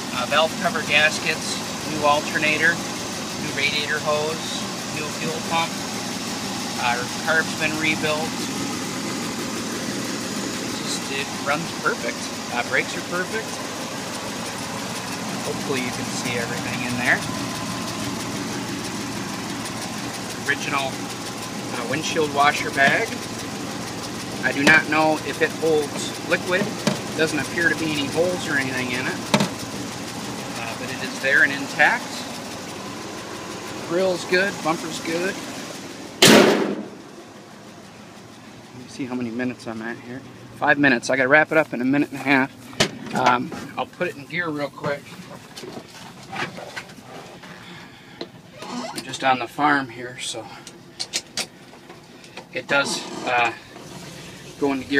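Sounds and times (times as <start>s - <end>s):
truck engine idling: 0.0s - 54.9s.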